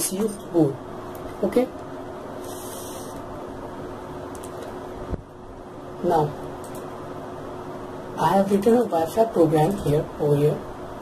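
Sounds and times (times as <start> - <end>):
faint hum: 0.0 - 11.0
background hiss: 1.8 - 9.4.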